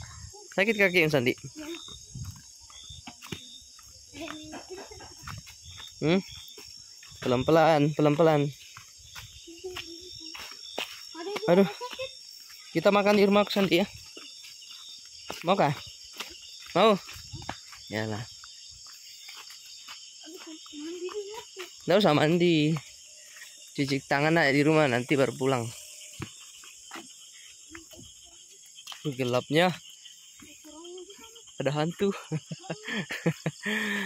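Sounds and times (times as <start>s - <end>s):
crickets chirping: 0.0s - 34.0s
night insects humming: 0.0s - 34.0s.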